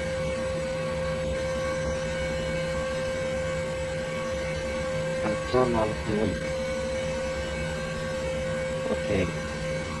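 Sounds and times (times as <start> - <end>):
constant hum: 0.0 - 10.0
steady droning noise: 0.0 - 10.0.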